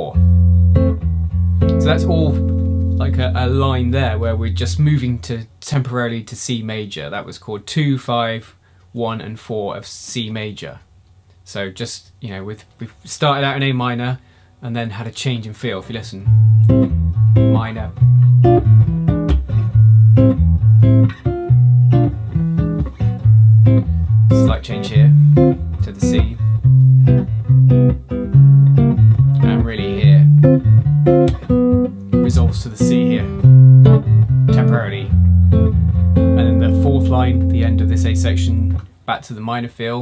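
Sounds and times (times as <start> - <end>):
jazz guitar comping: 0.0 - 5.5, 16.2 - 39.0.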